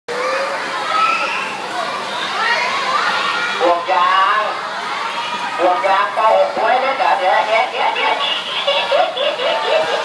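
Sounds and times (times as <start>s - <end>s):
boys shouting and talking: 0.1s - 10.0s.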